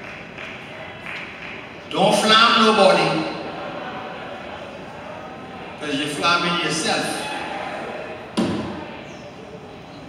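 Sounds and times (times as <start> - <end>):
man speaking over public address: 1.9 - 3.5, 5.7 - 7.5.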